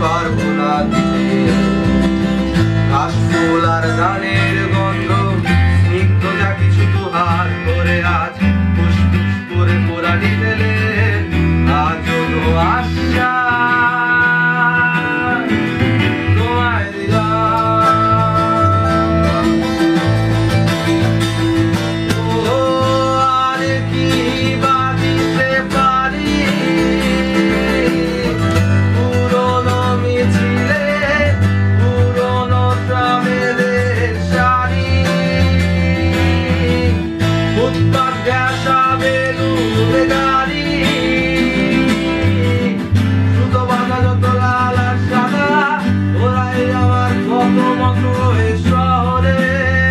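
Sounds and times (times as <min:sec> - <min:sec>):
electric bass guitar: 0:00.0 - 0:49.9
man singing: 0:00.0 - 0:49.9
strummed acoustic guitars: 0:00.0 - 0:49.9.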